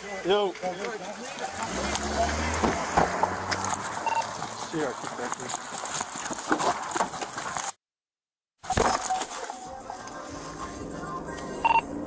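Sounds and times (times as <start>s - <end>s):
gear rustling and clinking: 3.2s - 7.7s.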